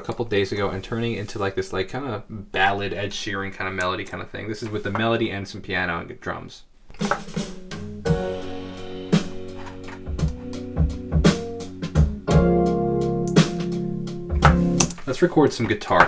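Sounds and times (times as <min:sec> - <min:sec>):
piano chords: 0:07.2 - 0:15.0
sparse drum hits: 0:14.3 - 0:14.8.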